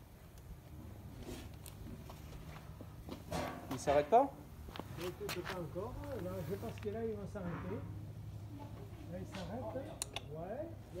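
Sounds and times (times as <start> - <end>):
sharp clicks: 10.0 - 10.3.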